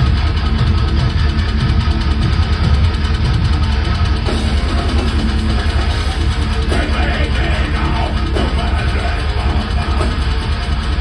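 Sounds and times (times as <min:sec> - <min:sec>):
distorted guitar and bass riffing: 0:00.0 - 0:11.0
heavy metal band playing live: 0:00.0 - 0:11.0.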